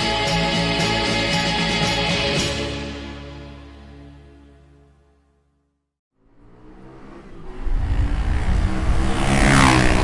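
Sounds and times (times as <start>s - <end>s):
vehicle engine passing by: 6.2s - 10.0s.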